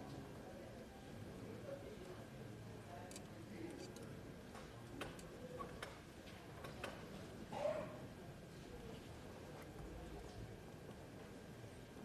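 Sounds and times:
low room noise: 0.0 - 12.0.

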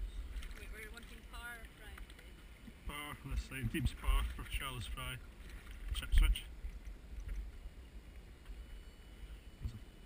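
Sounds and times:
thin steady high tone: 7.6 - 10.0.

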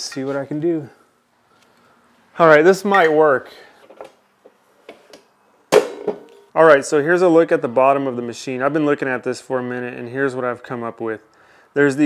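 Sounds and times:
loud clunk with ring: 5.7 - 6.3.

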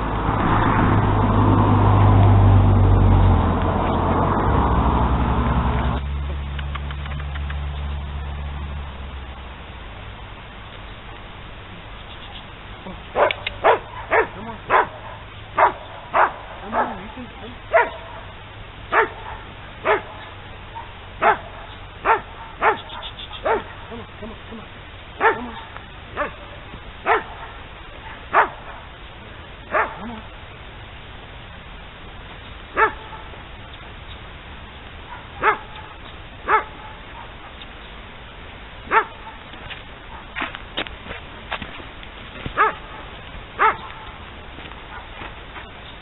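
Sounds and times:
dog barking: 13.2 - 24.4, 25.2 - 28.9, 29.7 - 30.3, 32.8 - 33.4, 35.1 - 37.6, 38.9 - 39.5, 42.6 - 43.0, 43.6 - 44.2, 44.9 - 45.2.

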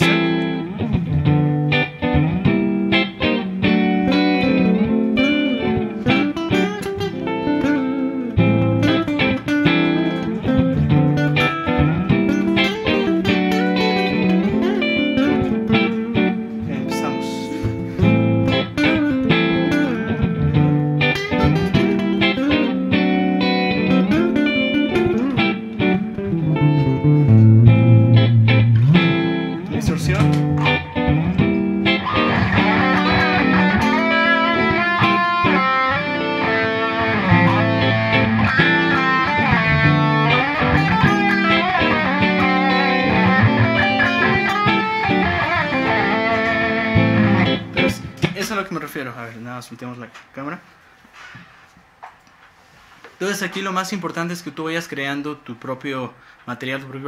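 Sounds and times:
sustained low guitar chords: 0.0 - 48.4
electric guitar lead: 0.0 - 48.5.

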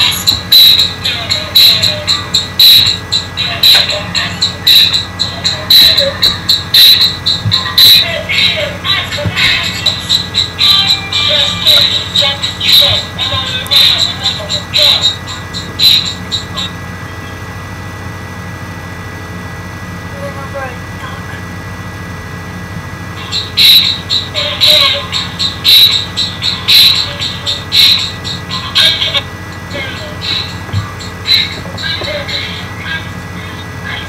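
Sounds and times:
hip-hop backing beat: 0.0 - 16.6, 23.2 - 32.8
low hum: 0.0 - 34.0
boy rapping: 0.3 - 2.5, 3.4 - 6.4, 7.5 - 15.2.

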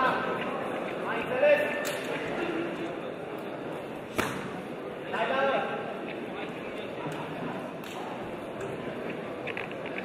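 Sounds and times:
kickboxing strike slap: 4.1 - 4.6.

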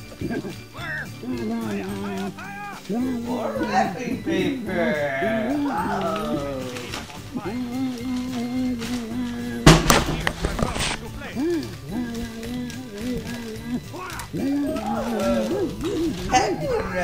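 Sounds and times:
wrapping paper crinkling: 0.0 - 17.0.

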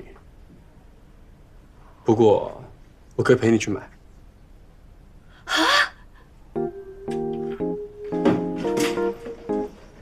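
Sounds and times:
light music notes: 6.6 - 10.0.

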